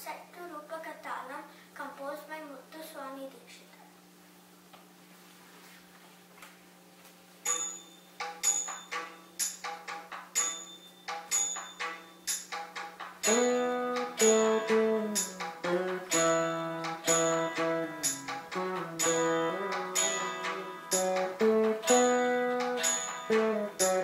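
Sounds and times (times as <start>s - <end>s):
faint steady drone: 13.2s - 24.0s
plucked veena notes: 13.3s - 24.0s.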